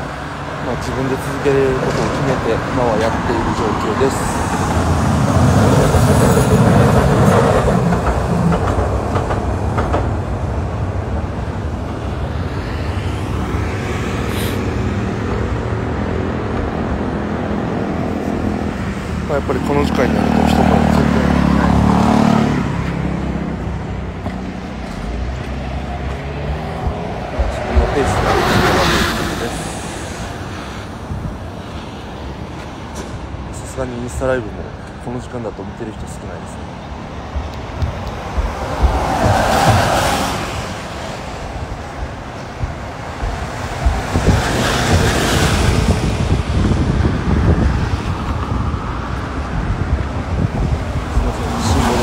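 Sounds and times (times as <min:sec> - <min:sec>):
vehicles passing: 0:00.0 - 0:52.0.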